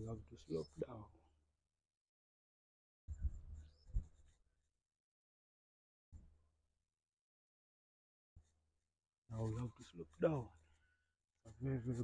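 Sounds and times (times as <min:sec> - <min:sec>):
rustling on a body-worn microphone: 0:03.1 - 0:04.5.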